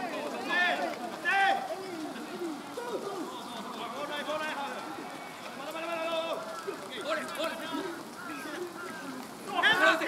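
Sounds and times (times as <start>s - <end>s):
men shouting and calling: 0.0s - 10.0s
long drawn-out call: 6.3s - 9.8s.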